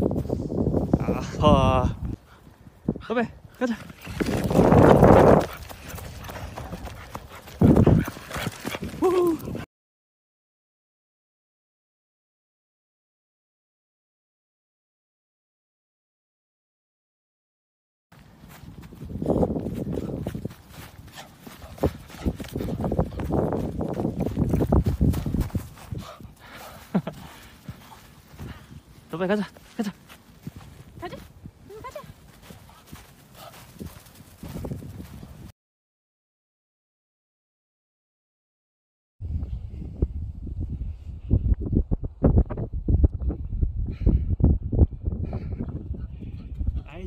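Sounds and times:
wind buffeting microphone: 0.0s - 9.6s, 18.2s - 29.5s, 30.2s - 35.5s, 39.2s - 47.0s
woman's voice: 31.0s - 32.2s.

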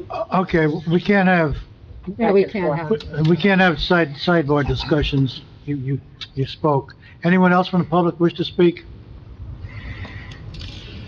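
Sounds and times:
room hum: 0.0s - 11.0s.

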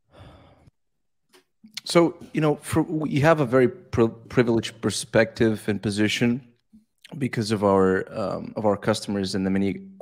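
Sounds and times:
man breathing: 0.0s - 0.8s
man speaking: 1.7s - 10.0s.

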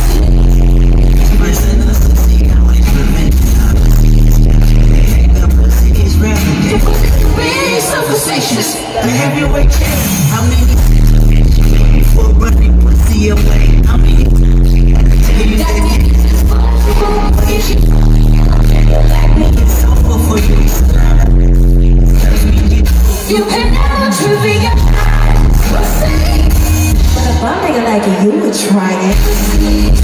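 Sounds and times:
heavy booming bass: 0.0s - 7.4s, 9.4s - 24.0s, 24.6s - 27.6s
live concert music over pa: 0.0s - 30.0s
woman singing into a microphone: 6.7s - 9.0s, 15.6s - 19.8s, 23.2s - 30.0s.

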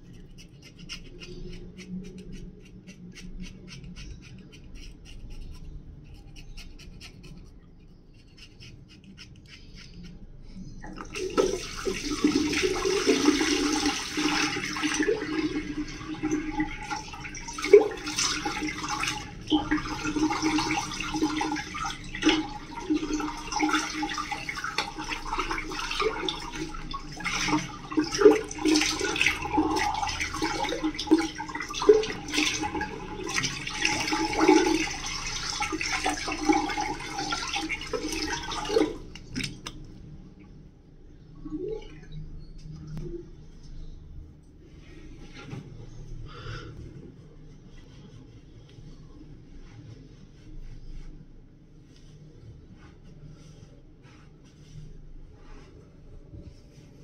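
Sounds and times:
running water: 10.8s - 40.0s.

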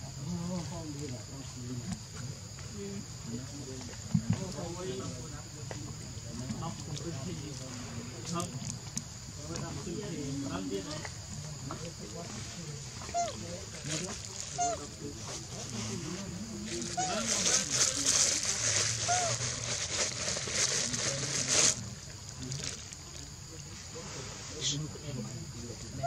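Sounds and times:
murmur of distant voices: 0.0s - 26.0s.

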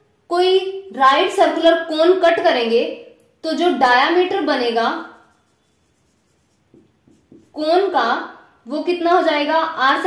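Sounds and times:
woman's voice: 0.3s - 5.2s, 7.5s - 10.0s
marker pen writing on paper: 4.8s - 7.8s.

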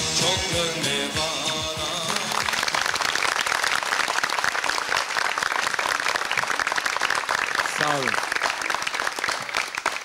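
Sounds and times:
audience applauding: 1.5s - 10.0s.

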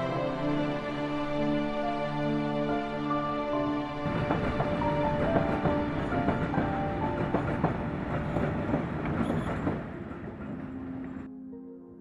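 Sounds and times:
music: 0.0s - 12.0s
train wheels clattering on track: 4.0s - 11.3s.

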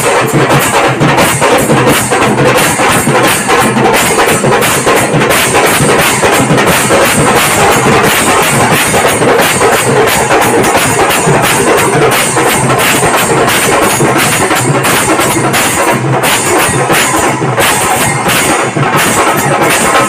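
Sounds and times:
brass hand cymbals clashing: 0.0s - 20.0s
drum beat: 0.0s - 20.0s.

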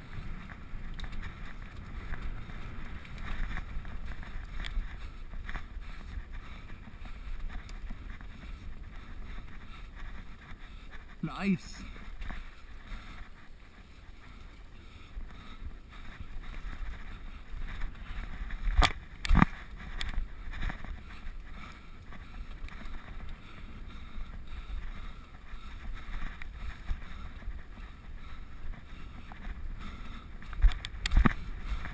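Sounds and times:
bike rattling over ground: 0.0s - 11.2s, 12.0s - 31.9s
tyres rolling on dirt: 0.0s - 11.2s
bike rattles and knocks: 16.1s - 23.7s.

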